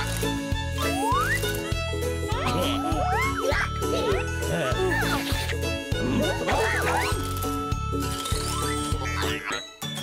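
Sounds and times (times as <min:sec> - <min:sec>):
bouncy cartoon music: 0:00.0 - 0:10.0
squeaky cartoon voices: 0:02.3 - 0:07.3, 0:08.3 - 0:09.7.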